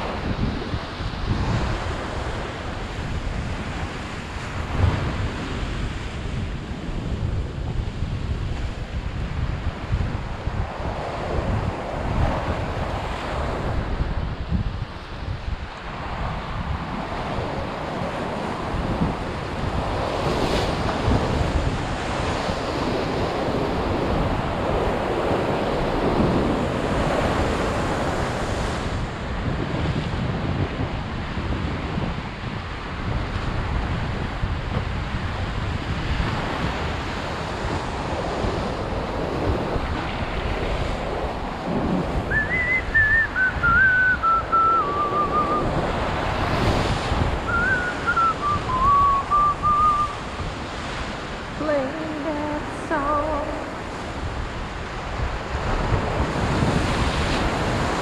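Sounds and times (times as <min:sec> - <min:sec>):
ocean surf breaking on rocks: 0:00.0 - 0:58.0
wind buffeting microphone: 0:00.0 - 0:58.0
thin whistle-like tone: 0:42.3 - 0:45.7, 0:47.5 - 0:50.2.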